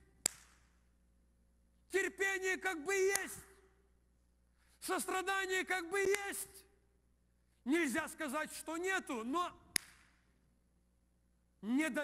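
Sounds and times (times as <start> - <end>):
hand clap: 0.2 - 0.7, 9.8 - 10.2.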